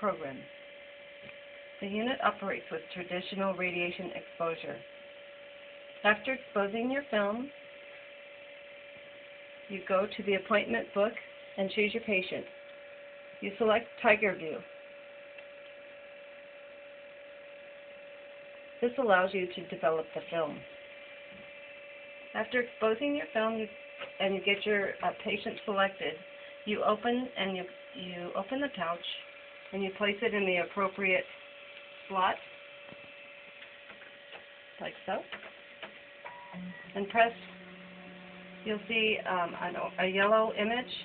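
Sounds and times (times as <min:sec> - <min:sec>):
steady electrical hum: 0:00.0 - 0:41.0
faint electronic tones: 0:36.3 - 0:41.0.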